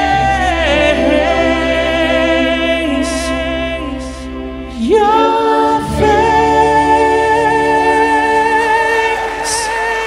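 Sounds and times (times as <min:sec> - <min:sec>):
man singing a long high note: 0:00.0 - 0:10.0.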